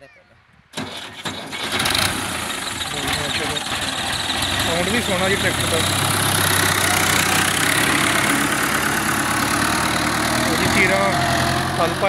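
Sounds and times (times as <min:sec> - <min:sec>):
tractor diesel engine running: 0:00.8 - 0:12.0.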